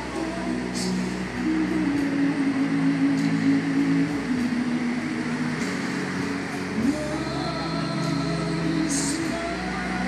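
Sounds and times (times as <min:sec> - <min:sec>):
held low music chord: 0:00.0 - 0:10.0.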